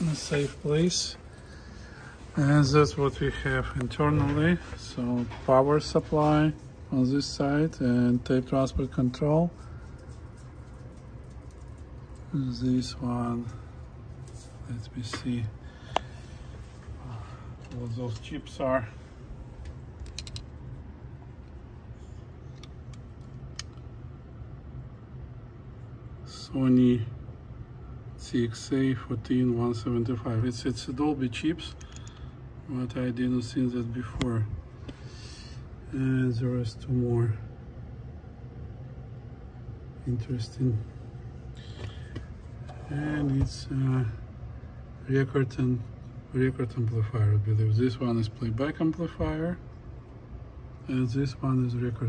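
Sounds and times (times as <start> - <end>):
low steady hum: 0.0 - 52.0.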